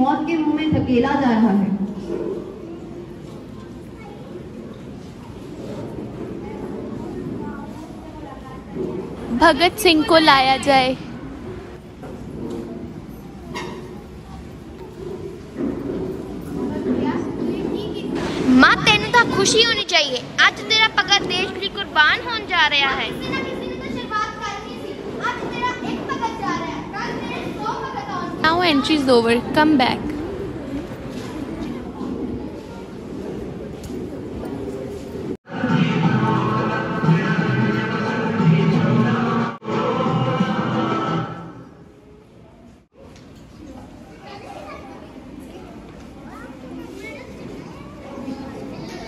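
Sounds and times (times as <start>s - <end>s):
children chattering: 1.4s - 38.2s, 38.8s - 49.0s.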